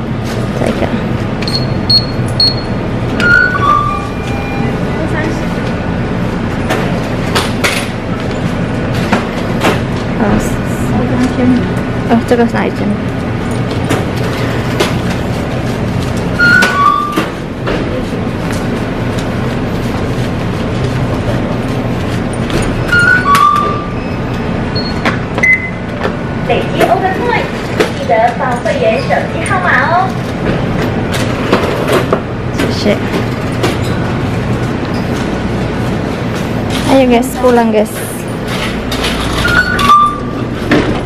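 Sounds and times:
steady low hum: 0.0s - 41.0s
two-note electronic beep: 1.5s - 5.0s.

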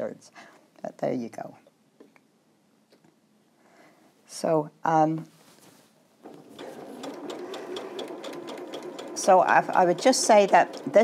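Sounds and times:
electric sewing machine stitching: 6.2s - 11.0s.

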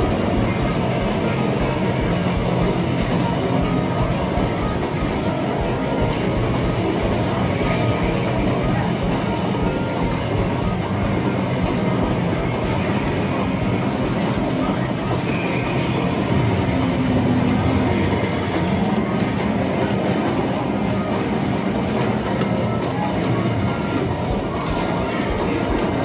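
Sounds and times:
arcade music: 0.0s - 26.0s
electronic game sounds: 0.0s - 26.0s
medal pusher rumbling clatter: 0.0s - 26.0s.

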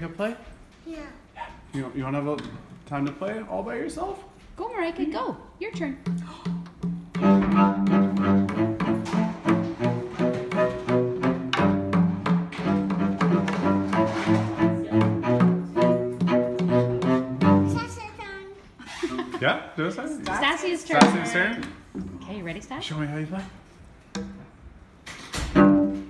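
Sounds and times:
hand drum taps with mallet: 5.7s - 13.9s, 21.0s - 21.7s
string instrument low notes: 6.6s - 18.0s, 25.4s - 26.0s.

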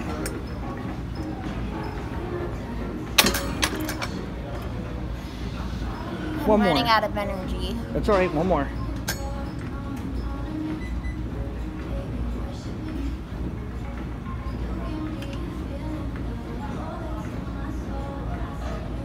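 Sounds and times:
faint background music: 0.0s - 19.0s
steady low hum: 0.0s - 19.0s.

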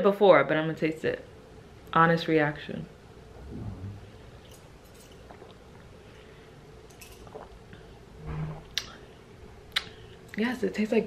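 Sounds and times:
room hum: 0.0s - 11.0s
closed-mouth humming: 3.3s - 4.5s, 7.2s - 10.1s
person gulping and swallowing: 5.2s - 5.9s, 7.2s - 7.8s.

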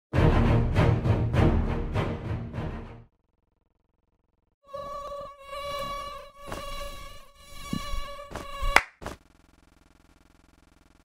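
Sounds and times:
faint hum: 3.1s - 11.0s
mosquito whine: 4.6s - 9.2s.

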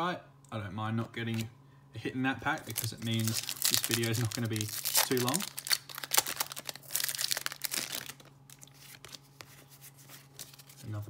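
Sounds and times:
foil wrapper crinkling and tearing: 2.5s - 9.4s
cards rustling and clicking: 2.5s - 11.0s.

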